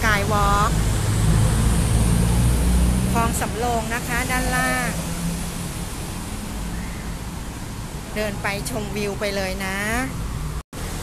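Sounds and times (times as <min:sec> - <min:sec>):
low rumble of passing vehicle: 0:00.0 - 0:08.3.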